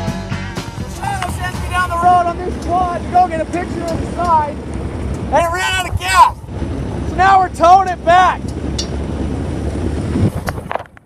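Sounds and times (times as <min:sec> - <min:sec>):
music: 0:00.0 - 0:02.8
low rumble: 0:00.0 - 0:11.0
wind noise: 0:00.0 - 0:11.0
person speaking: 0:00.9 - 0:04.6, 0:05.3 - 0:06.4.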